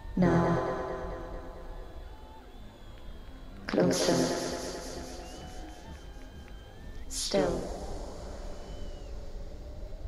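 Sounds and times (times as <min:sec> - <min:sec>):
spoken vocal sample with echo: 0:00.0 - 0:01.6, 0:03.7 - 0:05.9, 0:07.1 - 0:08.5.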